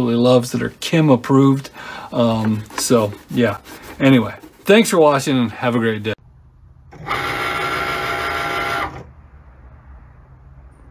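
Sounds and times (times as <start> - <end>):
cutting machine motors whirring: 6.9 - 9.1.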